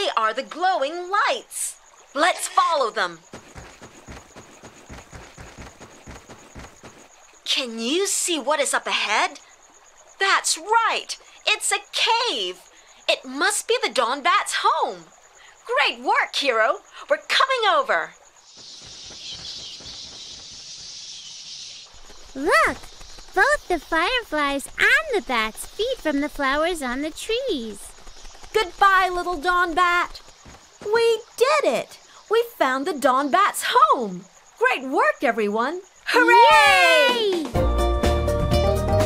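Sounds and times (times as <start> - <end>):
high chirring insects: 0.0 - 37.6
soft irregular patter: 2.2 - 8.2, 21.9 - 32.7
soft thumps and rustles: 3.3 - 7.3.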